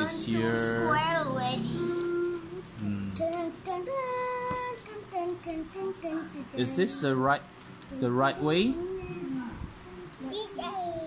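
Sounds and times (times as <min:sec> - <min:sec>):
child singing: 0:00.0 - 0:07.0, 0:08.6 - 0:11.0.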